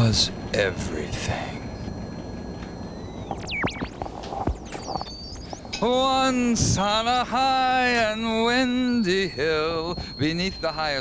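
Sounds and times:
synthesizer tones and sweeps: 0.0s - 9.8s
low hum: 0.0s - 11.0s.

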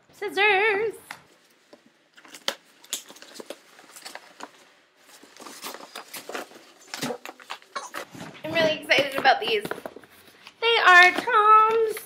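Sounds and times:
cardboard box rustling and tearing: 2.2s - 10.0s.

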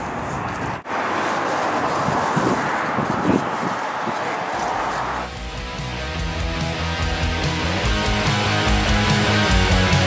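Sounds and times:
outdoor background noise: 0.0s - 5.6s.

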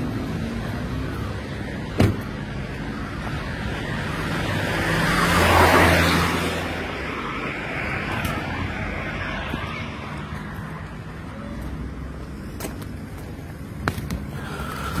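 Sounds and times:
traffic hum: 0.0s - 15.0s
vehicle passing close: 2.9s - 10.6s.

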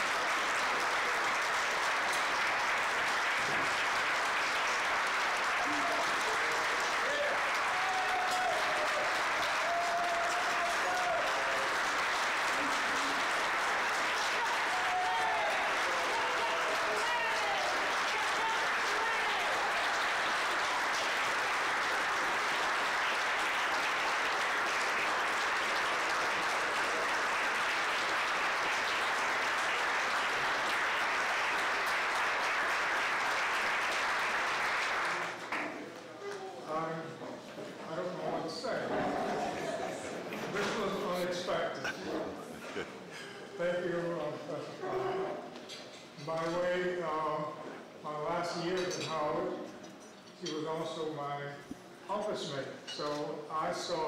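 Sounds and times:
dinner guests applauding: 0.0s - 37.0s, 38.1s - 45.4s.

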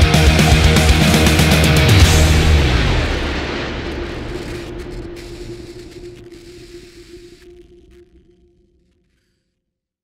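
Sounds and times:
drums: 0.0s - 8.2s
distorted electric guitars: 0.0s - 9.0s.

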